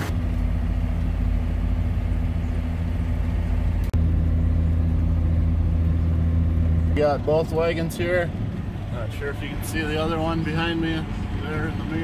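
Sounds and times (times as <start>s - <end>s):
tractor diesel engine idling: 0.0s - 12.0s.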